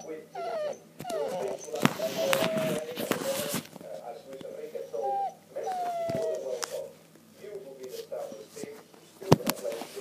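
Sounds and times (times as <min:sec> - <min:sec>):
dog whining: 0:00.0 - 0:03.7, 0:04.8 - 0:06.7.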